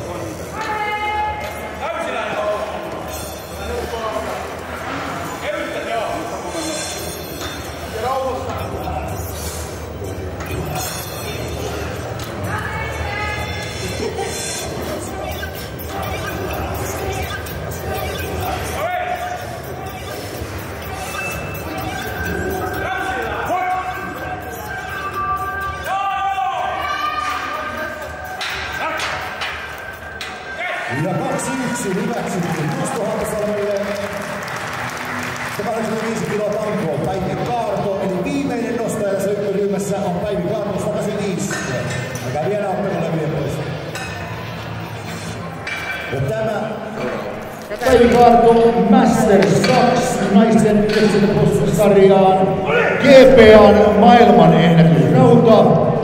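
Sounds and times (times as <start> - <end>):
background chatter: 0.0 - 56.0
hall background noise: 0.0 - 56.0
spectators yelling high-pitched shouts: 24.8 - 28.0.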